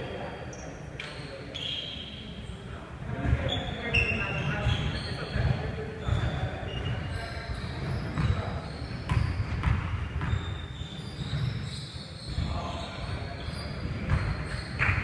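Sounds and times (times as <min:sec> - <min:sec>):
players' voices: 0:00.0 - 0:09.2, 0:11.1 - 0:14.3
basketball bouncing on hardwood: 0:08.2 - 0:08.4, 0:09.1 - 0:10.4, 0:14.0 - 0:15.0.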